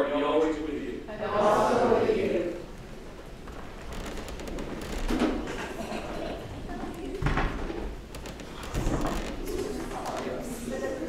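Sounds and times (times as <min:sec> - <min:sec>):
murmur of voices: 0:00.0 - 0:02.9, 0:05.4 - 0:11.0
rustling: 0:02.7 - 0:10.8.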